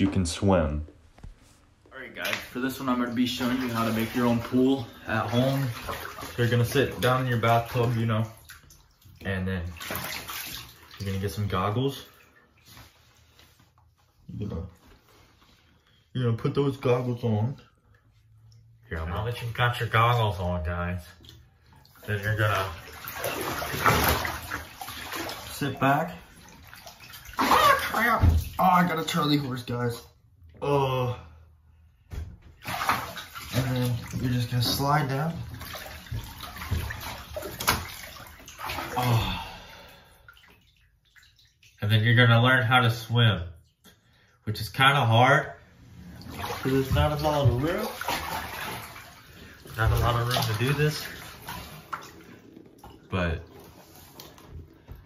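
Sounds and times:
man speaking: 0:00.0 - 0:01.0, 0:49.7 - 0:51.2, 0:53.0 - 0:53.6
bath water sloshing: 0:00.0 - 0:55.0
faint drips: 0:17.6 - 0:19.5, 0:46.4 - 0:55.0.

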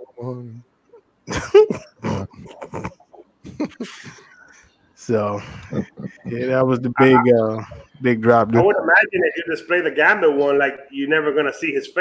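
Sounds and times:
breathy laughter: 0:01.3 - 0:04.6, 0:05.2 - 0:06.4.

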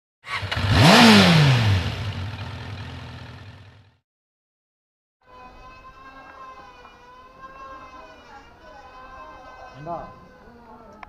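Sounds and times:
motorcycle engine revving: 0:00.2 - 0:04.0.

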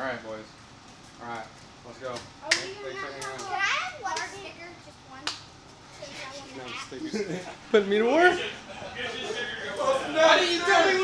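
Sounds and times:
children talking and calling out: 0:02.4 - 0:07.1.

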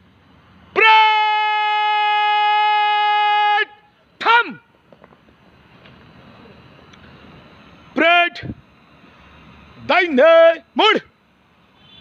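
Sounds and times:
man shouting drawn-out command: 0:00.7 - 0:04.7, 0:08.0 - 0:08.5, 0:09.8 - 0:11.1.

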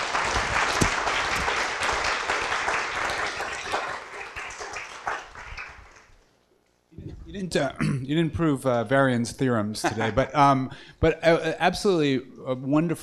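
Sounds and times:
audience applauding: 0:00.0 - 0:06.3.

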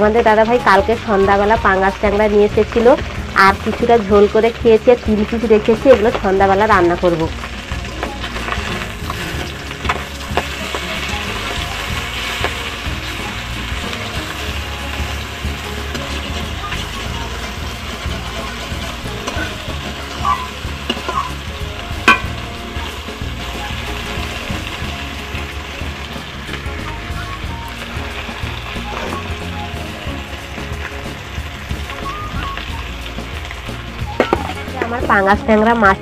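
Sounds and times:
fish sizzling in hot oil: 0:00.0 - 0:36.0.

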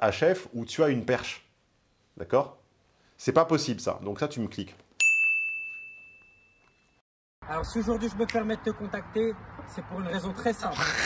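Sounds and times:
bell ding: 0:05.0 - 0:07.0.

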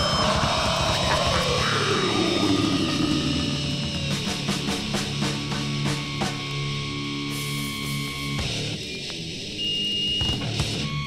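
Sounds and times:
chaotic heavy music: 0:00.0 - 0:09.4
distorted guitar noise sliding: 0:00.0 - 0:09.6.

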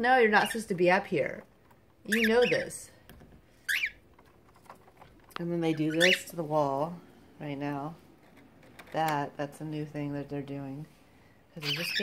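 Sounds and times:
cockatiel chirp: 0:03.7 - 0:04.0.

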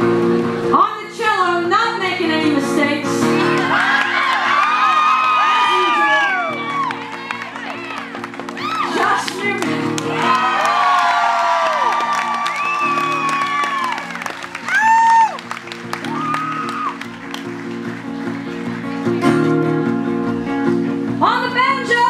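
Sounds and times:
acoustic guitars and cello playing: 0:00.0 - 0:10.9, 0:15.4 - 0:22.0
audience cheering and whooping: 0:03.4 - 0:17.9.

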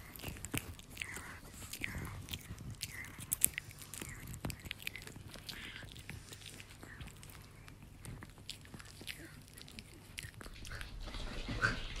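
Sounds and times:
dog gnawing a chew stick: 0:00.0 - 0:12.0.

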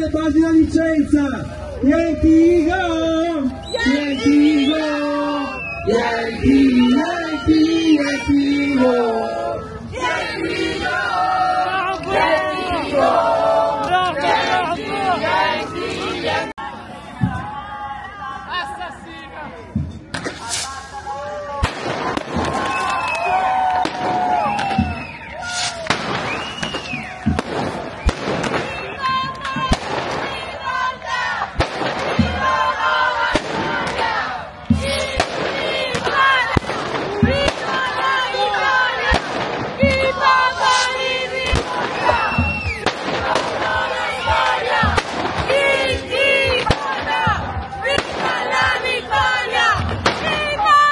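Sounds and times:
crowd shouting and chanting: 0:00.0 - 0:50.9
fireworks bangs and cracks: 0:19.7 - 0:50.9.

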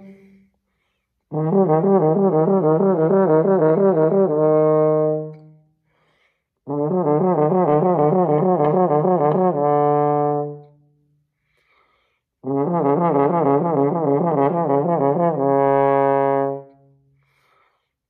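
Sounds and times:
french horn playing: 0:01.3 - 0:05.5, 0:06.7 - 0:10.7, 0:12.4 - 0:16.8
player breathing: 0:05.8 - 0:06.6, 0:11.4 - 0:12.4, 0:17.2 - 0:18.0.

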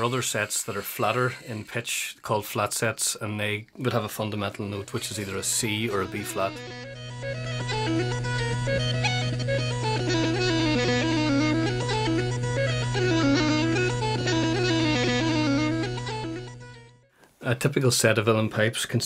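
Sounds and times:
bagpipe chanter melody: 0:05.2 - 0:17.0.

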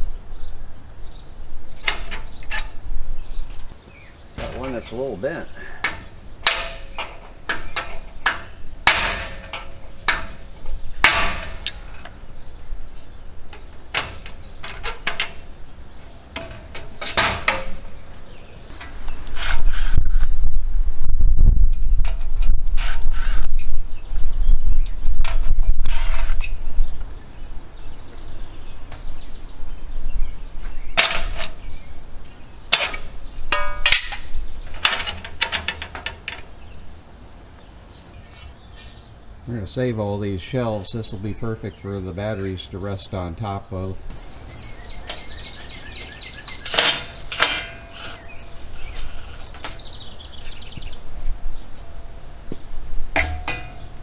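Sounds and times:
metal clanks and knocks: 0:04.4 - 0:05.0, 0:05.6 - 0:12.2, 0:13.5 - 0:15.6, 0:16.3 - 0:18.0, 0:31.0 - 0:31.6, 0:32.7 - 0:36.7, 0:44.2 - 0:50.9, 0:53.1 - 0:54.0.

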